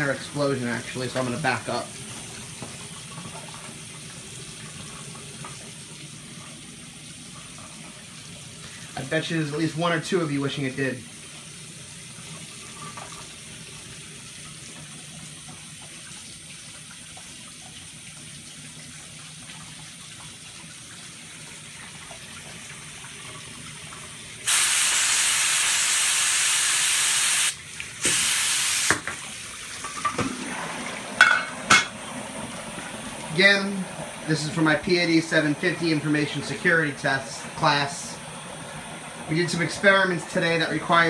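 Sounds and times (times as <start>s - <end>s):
loud hissing spray: 24.5s - 29.0s.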